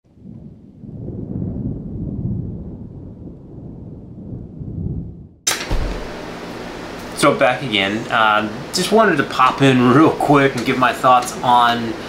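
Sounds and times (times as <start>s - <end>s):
low rolling rumble: 0.0s - 7.2s
bright burst of noise: 5.5s - 7.1s.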